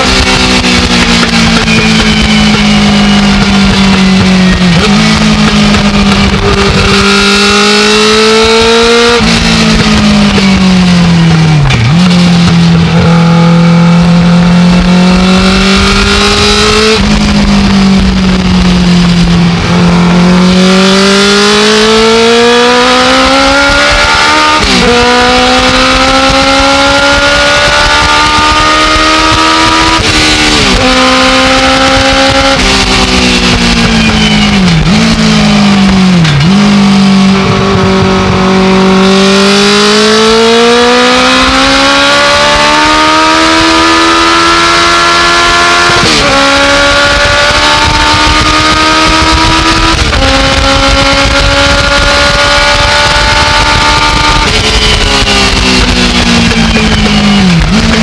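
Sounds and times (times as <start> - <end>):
race car engine at full throttle: 0.0 - 58.0.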